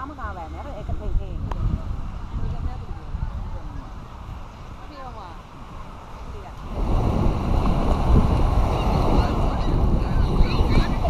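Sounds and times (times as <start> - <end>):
breaking surf: 0.0 - 11.0
wind buffeting microphone: 0.0 - 11.0.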